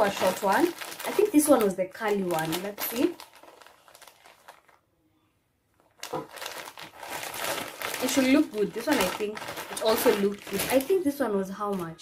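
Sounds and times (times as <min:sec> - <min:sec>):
plastic packaging crinkling: 0:00.0 - 0:04.8, 0:05.7 - 0:12.0.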